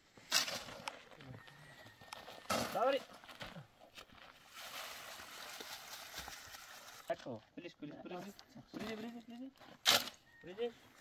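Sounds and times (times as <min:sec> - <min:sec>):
shovel scraping sand and cement: 0:00.2 - 0:01.0.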